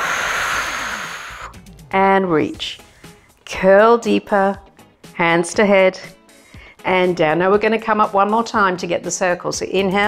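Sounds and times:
woman exhaling through mouth: 0:00.0 - 0:01.8.

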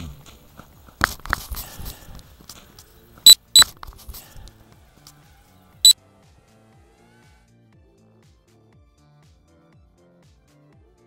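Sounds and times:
high electronic beeps: 0:03.3 - 0:03.6.

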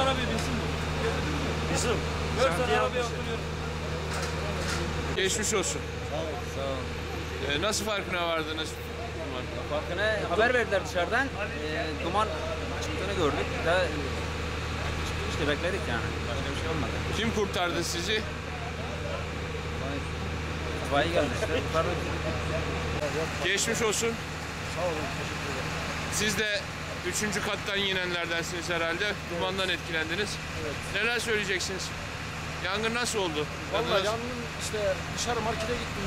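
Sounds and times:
faint voices talking: 0:00.0 - 0:36.0
vehicle engine idling: 0:00.0 - 0:36.0.

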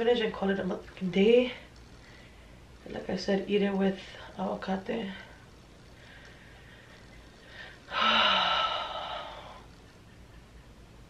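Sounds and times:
woman sighing: 0:07.9 - 0:09.6.

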